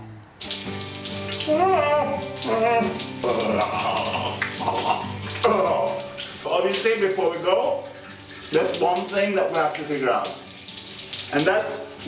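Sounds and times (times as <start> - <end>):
shower water spraying: 0.4 - 12.0.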